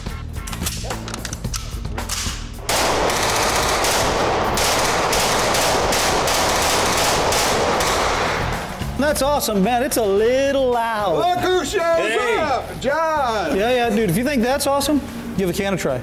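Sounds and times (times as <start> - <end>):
automatic rifle fire: 2.7 - 8.8.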